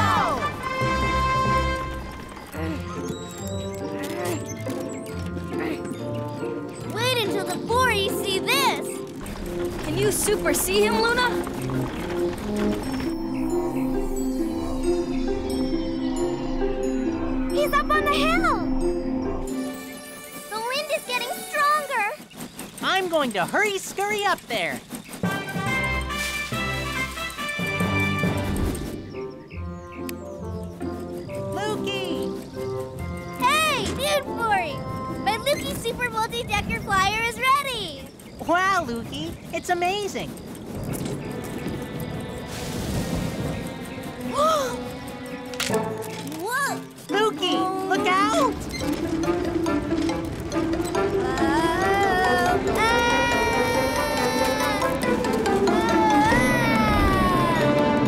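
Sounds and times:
cartoon soundtrack music: 0.0s - 22.2s, 25.2s - 37.8s, 43.1s - 58.0s.

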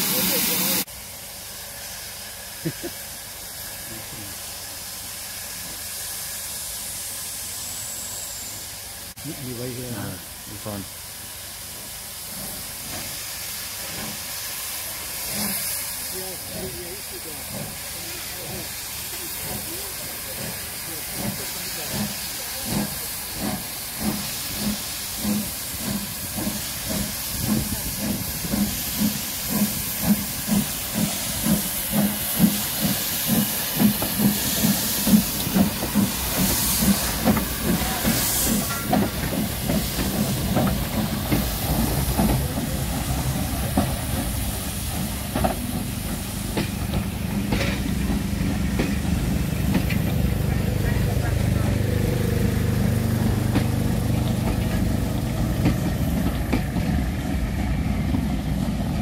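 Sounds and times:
steam hissing: 0.0s - 59.0s
steam locomotive chuffing: 0.0s - 59.0s
train coaches rumbling on track: 0.0s - 59.0s.

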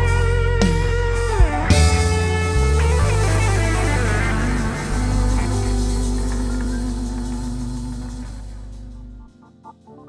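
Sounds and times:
live band holding final chord: 0.0s - 9.4s
heavy bass: 0.0s - 9.6s.

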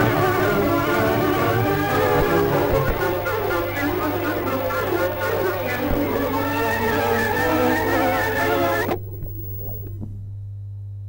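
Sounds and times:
music: 0.0s - 9.0s
low electrical hum: 0.0s - 11.0s.

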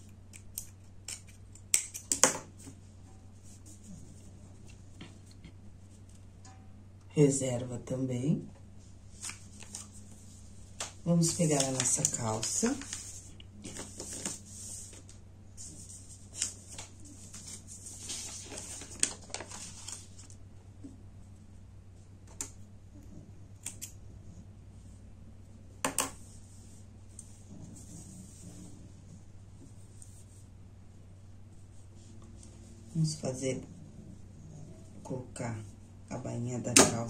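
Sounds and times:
low steady hum: 0.0s - 37.0s
fabric and paper rustling: 8.8s - 20.4s.

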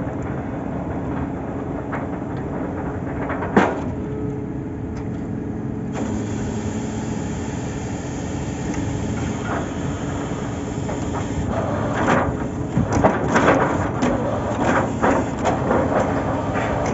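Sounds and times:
drilling rig engine droning: 5.9s - 16.9s.

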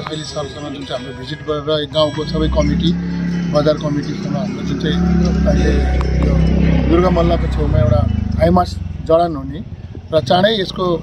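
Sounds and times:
man talking: 0.0s - 11.0s
vehicle engine running: 2.1s - 11.0s.

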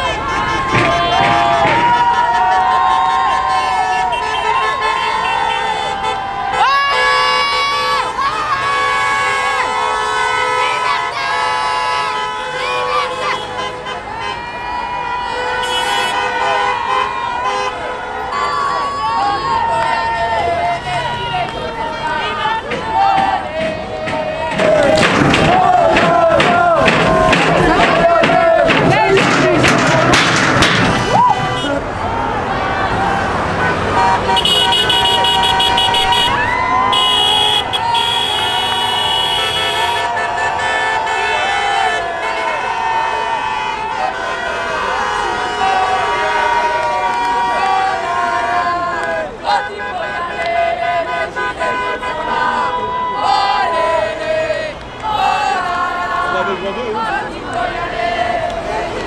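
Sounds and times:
car and truck horns: 0.0s - 59.0s
crowd shouting and cheering: 0.0s - 59.0s.

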